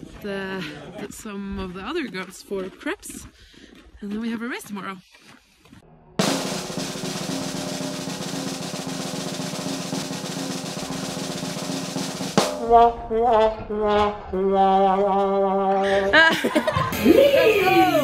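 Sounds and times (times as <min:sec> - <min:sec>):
snare drum roll: 0:06.2 - 0:12.9
held musical notes bending: 0:12.4 - 0:16.2, 0:16.9 - 0:18.0.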